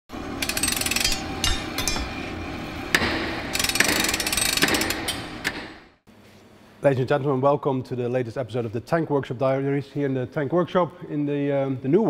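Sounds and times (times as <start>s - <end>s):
rapid mechanical rattling: 0.4s - 1.5s, 3.4s - 5.2s
sharp knocks: 2.9s - 5.8s.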